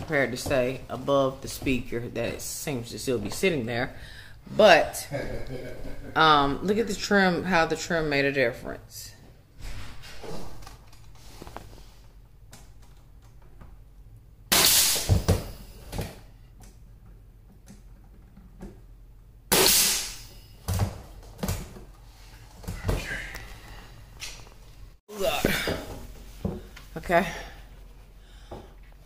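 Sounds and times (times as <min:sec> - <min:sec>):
nail gun shots with air hiss: 0:14.5 - 0:15.5, 0:19.5 - 0:20.3.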